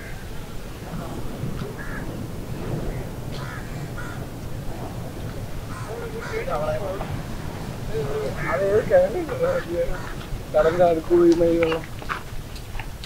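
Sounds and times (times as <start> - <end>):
birds calling: 0.0 - 13.0
low outdoor rumble: 0.0 - 13.0.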